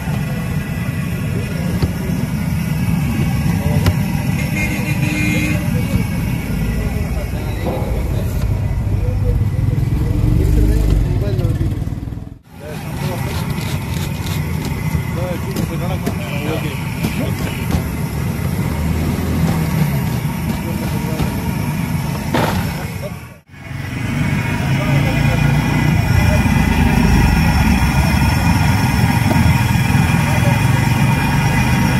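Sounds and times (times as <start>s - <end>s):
people talking: 0.0s - 11.8s, 12.6s - 18.3s, 19.4s - 21.6s, 22.4s - 23.4s, 24.4s - 31.9s
traffic rumble: 0.0s - 31.9s.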